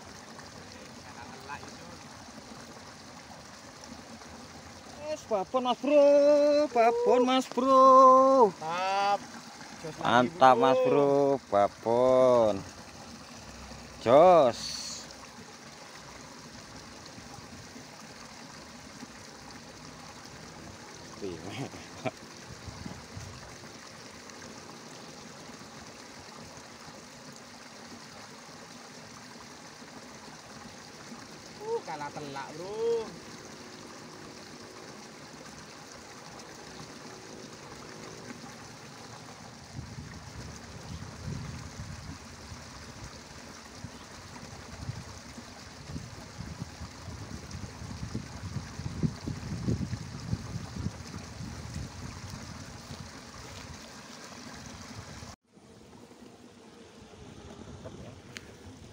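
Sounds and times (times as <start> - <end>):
water trickling in a ditch: 0.0 - 58.9.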